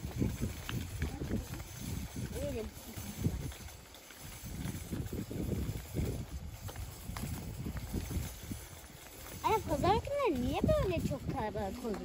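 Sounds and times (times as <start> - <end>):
footsteps on paved road: 0.0 - 12.0.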